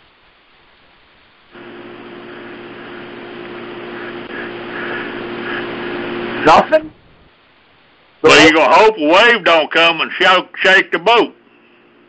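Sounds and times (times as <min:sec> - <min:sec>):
line hiss with low hum: 0:00.0 - 0:12.0.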